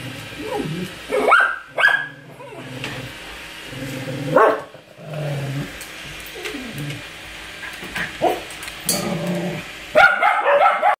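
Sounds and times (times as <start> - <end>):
dog whining bark: 0.4 - 2.7, 4.3 - 4.7, 8.2 - 8.5, 9.9 - 10.9.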